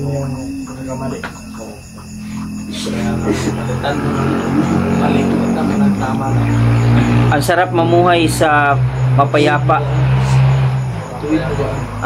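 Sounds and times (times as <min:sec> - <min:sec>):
crickets chirping: 0:00.0 - 0:12.0
person's wavering voice: 0:02.4 - 0:06.2.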